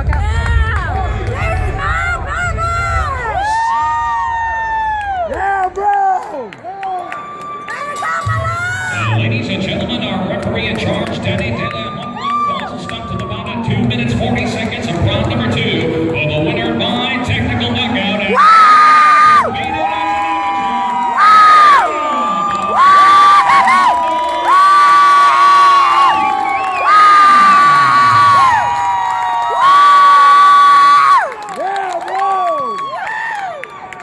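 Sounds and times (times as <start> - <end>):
crowd cheering: 0.0 - 34.0
high-pitched screams: 18.3 - 19.5, 20.6 - 31.3.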